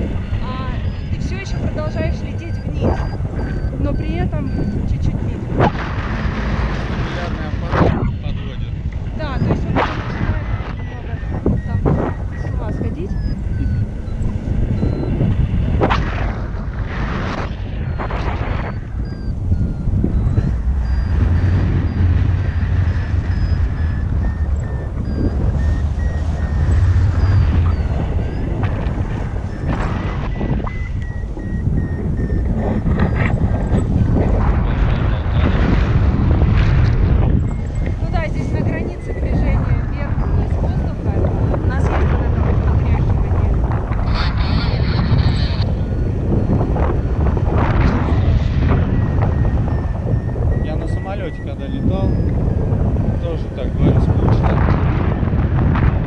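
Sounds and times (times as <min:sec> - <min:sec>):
electronic beeping shifting in pitch: 0:00.0 - 0:54.5
wind buffeting microphone: 0:00.0 - 0:56.0.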